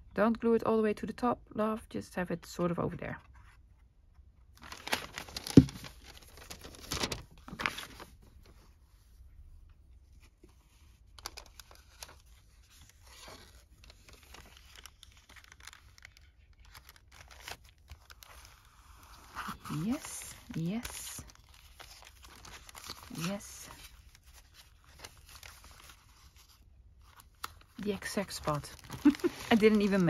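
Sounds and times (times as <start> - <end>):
paper envelopes rustling: 4.5 - 9.1, 10.1 - 30.0.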